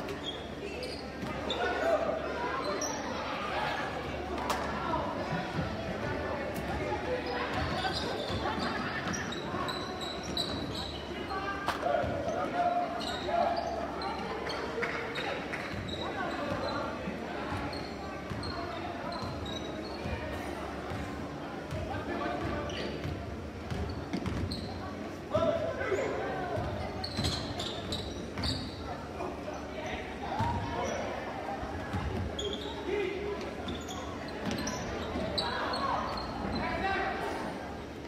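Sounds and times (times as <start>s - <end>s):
spectator chatter: 0.0s - 38.0s.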